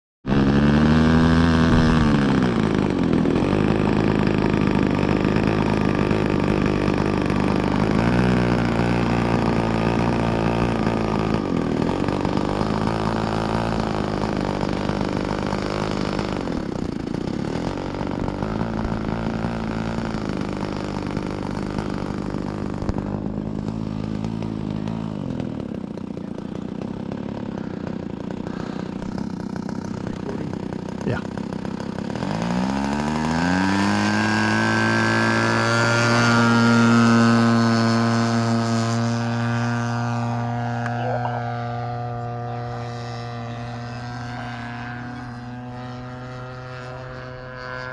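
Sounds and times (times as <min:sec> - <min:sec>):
model plane engine and propeller: 0:00.3 - 0:47.9.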